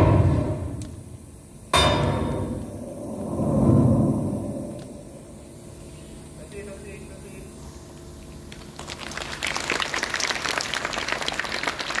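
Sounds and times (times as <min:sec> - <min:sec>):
group of people clapping: 0:08.5 - 0:12.0.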